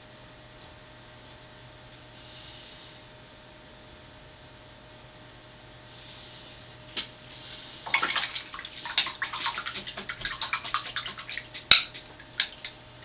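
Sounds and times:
brush swishing in water: 7.9s - 12.8s.

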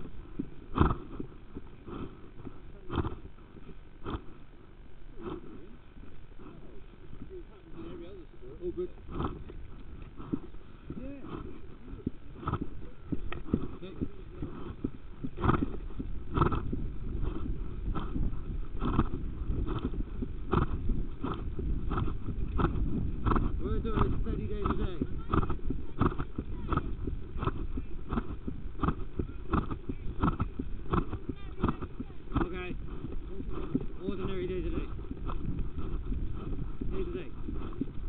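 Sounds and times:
horse breathing and striding: 0.0s - 38.0s
steady low rumble: 0.0s - 38.0s.

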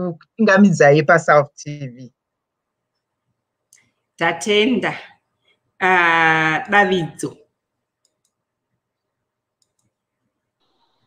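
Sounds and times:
person speaking: 3.8s - 5.2s, 5.8s - 7.5s
faint clicks: 8.0s - 8.4s, 9.0s - 10.0s.

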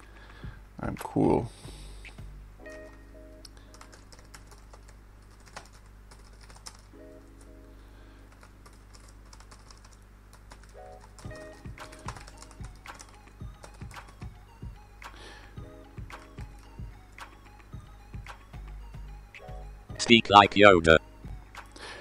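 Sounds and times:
typing on computer keyboard: 3.7s - 6.9s, 8.3s - 14.3s.

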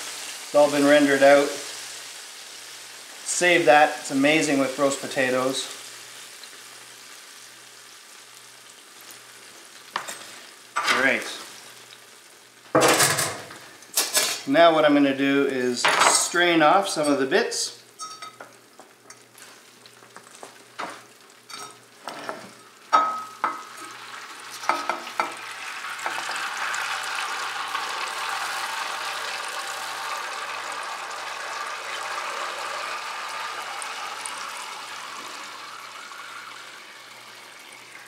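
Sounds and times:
fat pouring through strainer: 25.4s - 38.0s.

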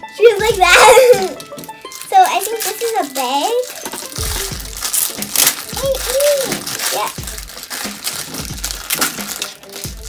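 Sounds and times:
background music with soft beat: 0.0s - 10.0s
plastic wrapping crinkling: 0.2s - 10.0s.

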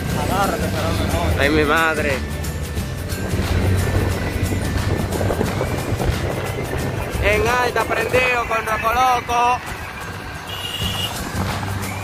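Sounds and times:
motorcycle engine running: 0.0s - 8.3s
road and wind noise: 0.0s - 12.0s.

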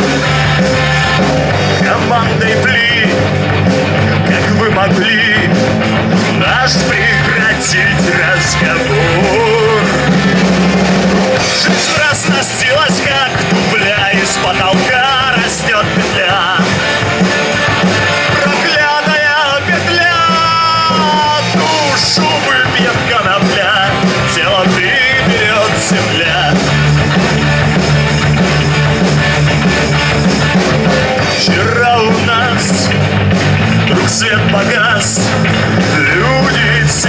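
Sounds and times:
bass guitar: 0.0s - 37.0s
drum kit: 0.0s - 37.0s
electric guitar: 0.0s - 37.0s
man singing into microphone: 1.6s - 3.3s, 4.1s - 10.4s, 11.4s - 17.0s, 18.2s - 26.7s, 31.2s - 33.0s, 33.8s - 37.0s.

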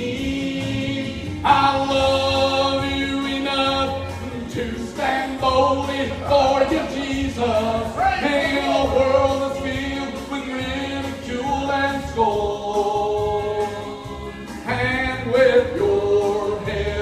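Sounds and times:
backing music: 0.0s - 17.0s
man singing gospel: 0.0s - 17.0s.

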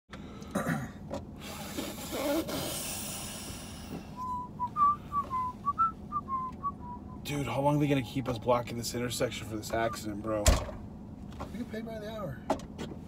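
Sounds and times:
man whistling a tune: 4.2s - 7.3s.

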